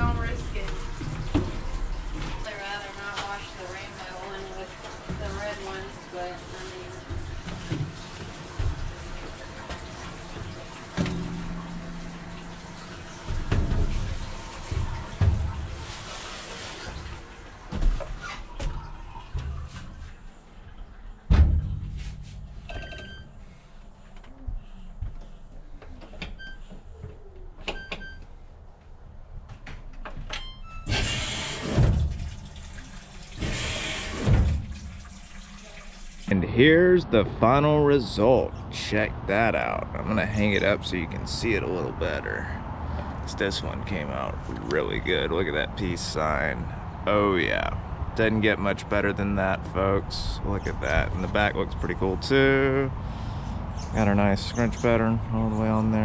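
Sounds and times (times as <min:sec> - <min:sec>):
water sounds: 0:00.0 - 0:24.0, 0:31.0 - 0:56.0
washing machine rushing noise: 0:00.0 - 0:28.2, 0:30.4 - 0:36.4
washing machine control panel beeps: 0:22.7 - 0:23.4, 0:26.3 - 0:26.7, 0:27.7 - 0:28.3, 0:30.3 - 0:31.6.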